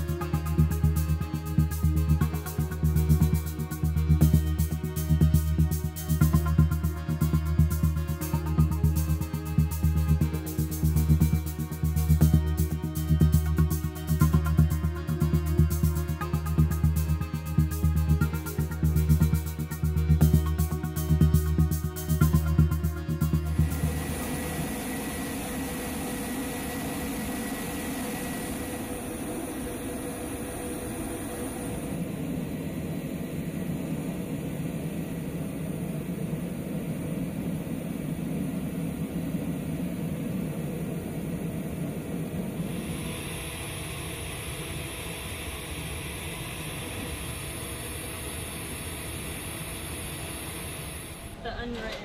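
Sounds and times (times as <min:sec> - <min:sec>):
aircraft engine and machinery noise: 0:00.0 - 0:52.0.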